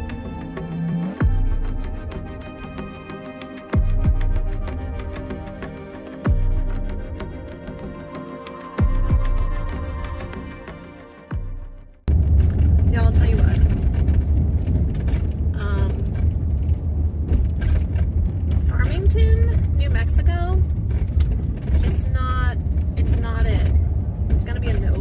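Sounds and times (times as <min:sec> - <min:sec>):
road and engine rumble: 0:00.0 - 0:25.0
woman talking: 0:12.9 - 0:13.8, 0:15.6 - 0:16.1, 0:18.6 - 0:20.6, 0:21.8 - 0:23.8, 0:24.4 - 0:25.0.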